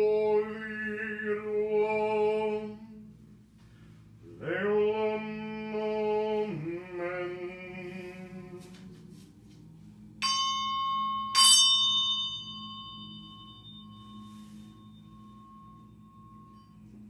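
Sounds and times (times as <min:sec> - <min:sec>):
ritual bell ringing: 0:10.2 - 0:17.0.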